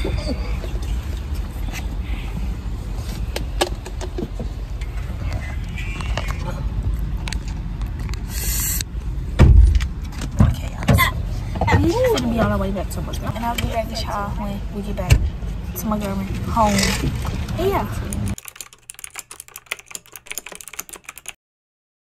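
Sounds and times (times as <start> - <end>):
short hiss: 8.3 - 8.8
loud thump: 9.4 - 9.8
sharp clicks: 18.1 - 21.4.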